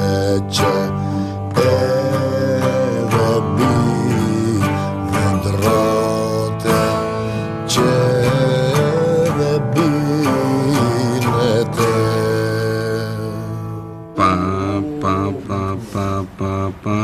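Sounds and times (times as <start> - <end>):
plucked lute folk melody: 0.0 - 14.2.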